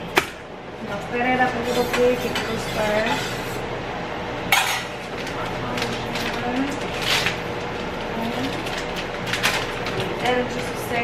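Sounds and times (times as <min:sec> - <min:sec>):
steady background hum: 0:00.0 - 0:11.0
containers and plastic bag rustling: 0:04.7 - 0:11.0.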